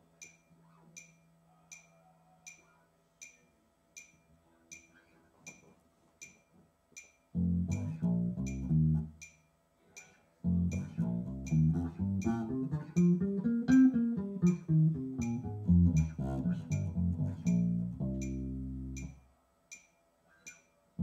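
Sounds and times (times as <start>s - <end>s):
metronome clicking: 0.2s - 5.6s, 6.2s - 20.7s
electric bass guitar plucked: 7.4s - 9.2s, 10.4s - 19.2s.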